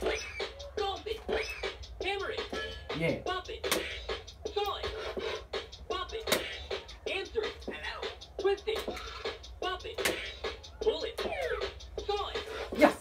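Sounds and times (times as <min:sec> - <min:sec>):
electronic game beat music: 0:00.0 - 0:13.0.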